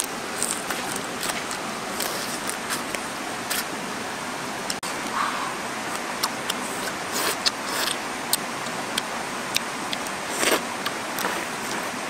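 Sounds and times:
stream flowing: 0.0 - 12.0.

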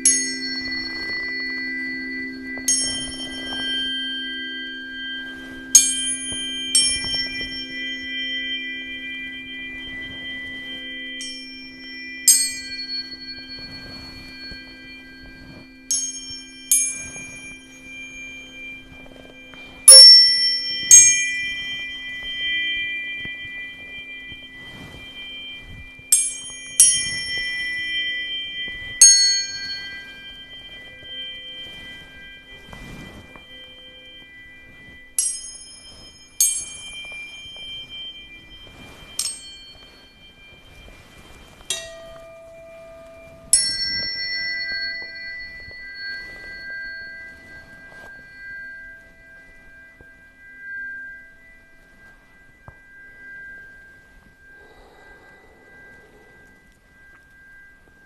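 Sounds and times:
low steady hum: 0.0 - 58.0
tuning forks ringing: 0.0 - 58.0.

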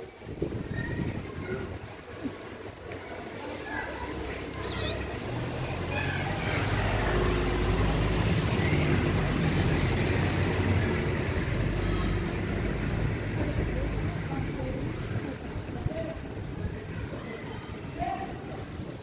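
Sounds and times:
vehicle engine rumbling: 3.9 - 17.2.

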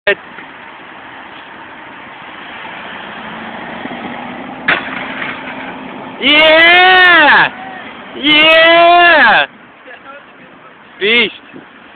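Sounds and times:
bike rolling: 0.2 - 6.2.

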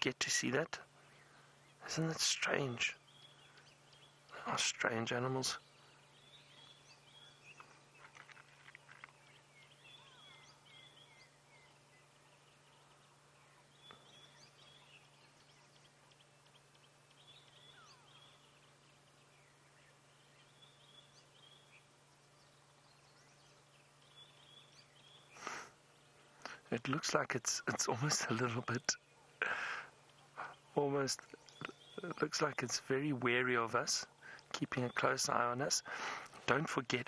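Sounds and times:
faint bird chirps: 0.0 - 37.0
low steady hum: 0.0 - 37.0.

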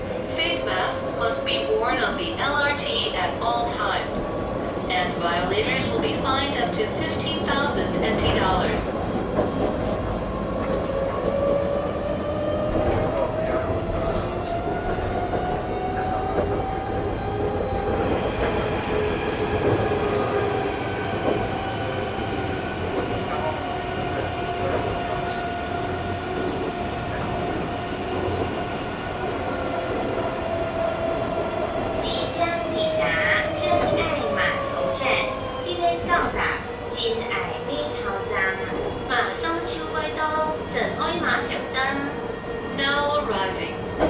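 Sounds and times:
wheels rumbling on rail: 0.0 - 44.0.

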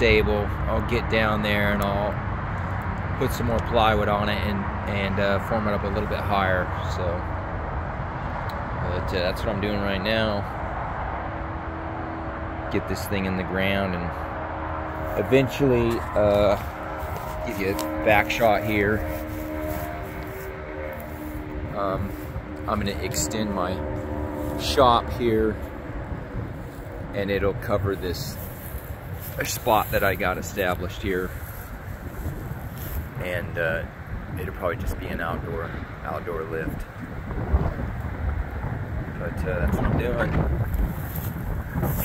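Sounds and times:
wind buffeting microphone: 0.0 - 42.0
low rumble: 2.1 - 34.6.

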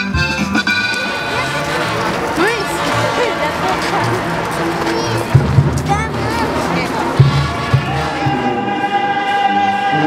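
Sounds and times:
choir singing sustained notes: 7.7 - 10.0.

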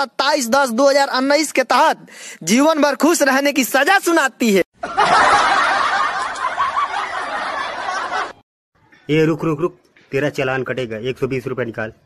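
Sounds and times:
crowd laughing: 4.8 - 8.4.

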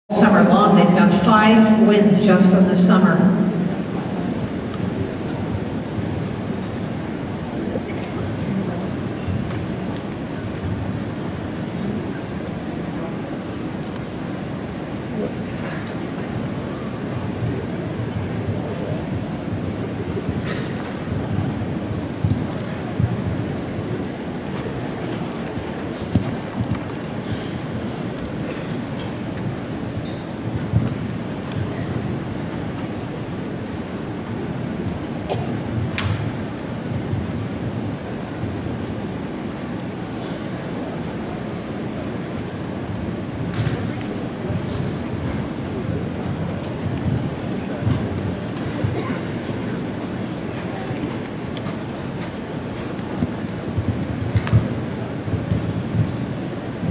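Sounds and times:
hall noise: 0.1 - 44.6
crowd murmur echoing: 0.1 - 56.9.

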